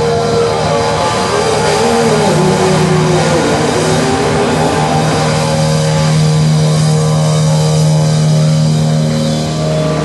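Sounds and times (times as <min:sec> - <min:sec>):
distorted electric guitar: 0:00.0 - 0:10.0
low drone: 0:00.0 - 0:10.0.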